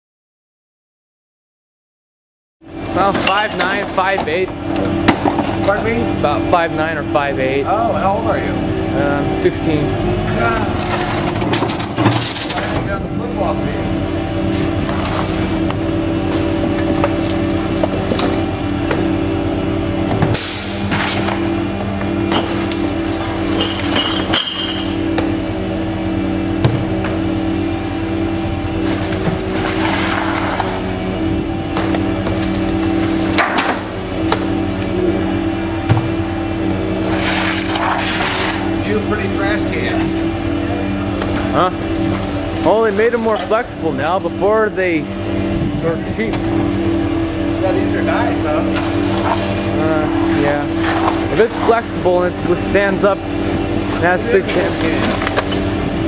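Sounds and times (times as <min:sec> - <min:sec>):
truck engine humming: 0:02.6 - 0:56.0.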